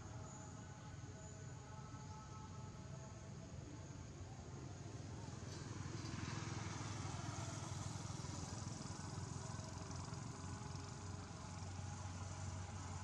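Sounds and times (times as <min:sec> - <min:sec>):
engine droning: 0:04.6 - 0:13.0.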